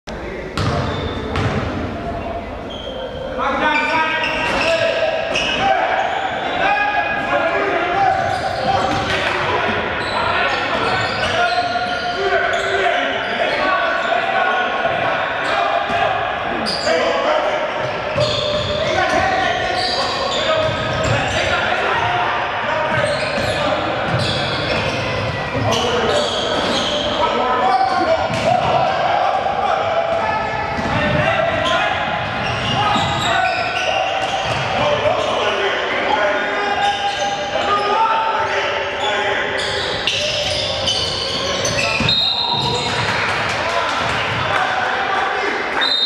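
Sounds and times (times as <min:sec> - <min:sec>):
players and spectators voices: 0:00.1 - 0:46.0.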